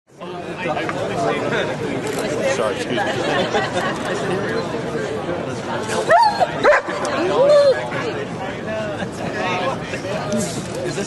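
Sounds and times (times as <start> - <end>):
crowd chatter: 0.1 - 11.0.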